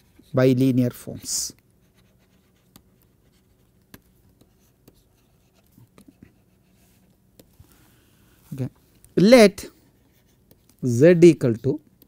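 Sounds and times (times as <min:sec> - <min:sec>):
stylus tapping and scratching: 0:01.6 - 0:07.8, 0:10.0 - 0:10.8.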